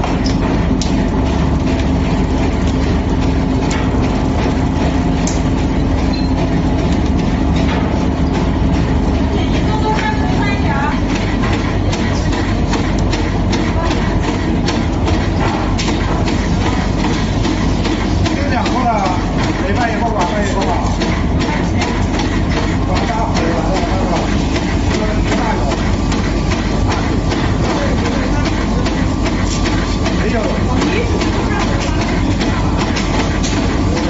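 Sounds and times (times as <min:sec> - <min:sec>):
machinery clicking and rattling: 0:00.0 - 0:34.0
rubber processing machinery running: 0:00.0 - 0:34.0.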